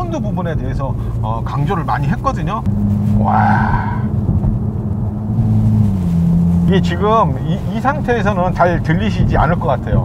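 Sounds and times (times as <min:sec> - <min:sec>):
car engine from inside cabin: 0:00.0 - 0:10.0.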